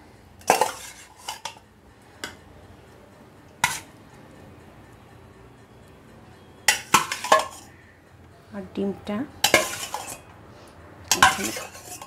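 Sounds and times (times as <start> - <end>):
steel utensils clinking: 0.4 - 1.6, 6.7 - 7.7, 9.4 - 10.3, 11.1 - 12.0.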